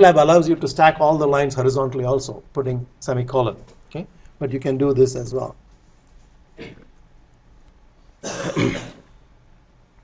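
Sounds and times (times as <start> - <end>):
man clearing his throat: 6.6 - 6.9, 8.2 - 9.1.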